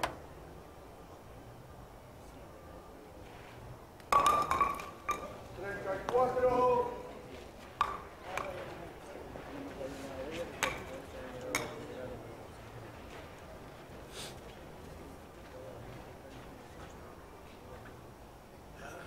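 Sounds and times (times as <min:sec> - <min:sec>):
wooden ball striking skittles: 0:04.0 - 0:05.4.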